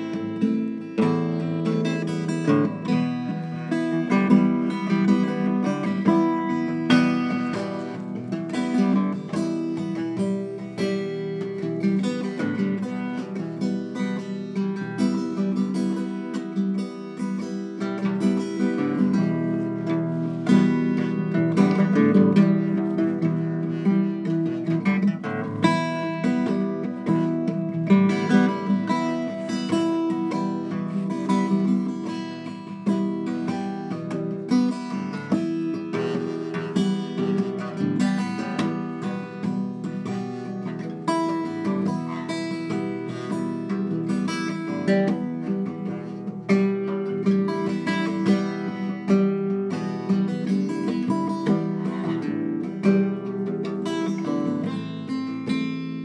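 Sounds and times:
solo guitar playing: 0:00.0 - 0:56.0.

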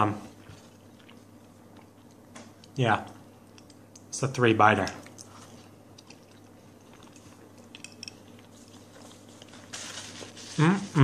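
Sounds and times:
paper napkin rustling: 0:08.5 - 0:11.0.

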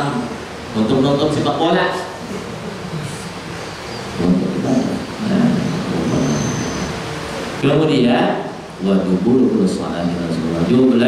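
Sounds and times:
man speaking into a microphone: 0:04.2 - 0:06.2, 0:07.6 - 0:11.0.

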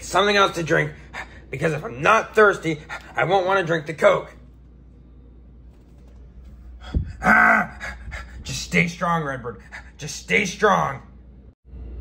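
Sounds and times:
low steady hum: 0:00.0 - 0:12.0
person gasping: 0:06.8 - 0:08.5.

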